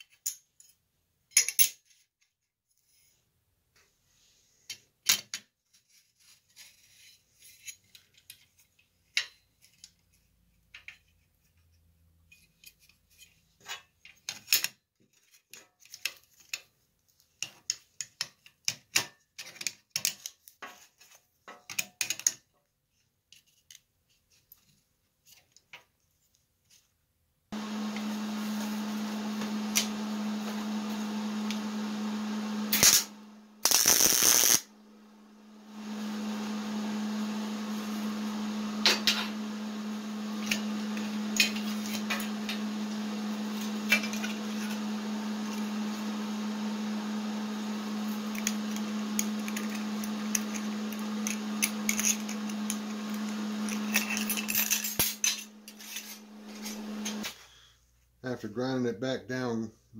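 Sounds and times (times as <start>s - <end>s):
rotary tool grinding glass: 32.7s - 34.7s, 41.3s - 42.3s, 48.3s - 57.2s.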